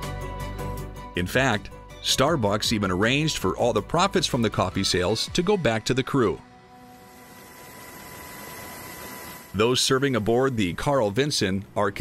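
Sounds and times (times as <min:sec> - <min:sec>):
faint electrical hum: 0:06.4 - 0:12.0
steady hiss: 0:06.7 - 0:11.8.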